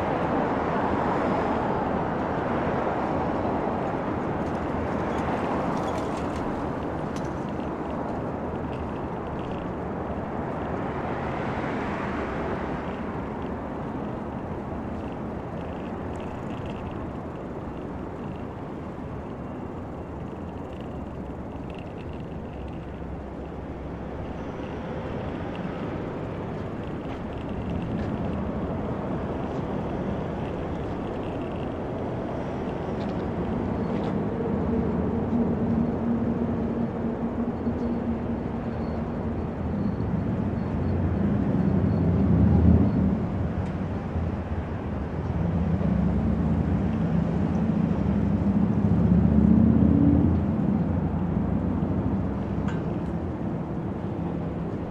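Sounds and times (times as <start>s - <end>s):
city road traffic: 0.0s - 54.9s
low engine hum: 0.0s - 54.9s.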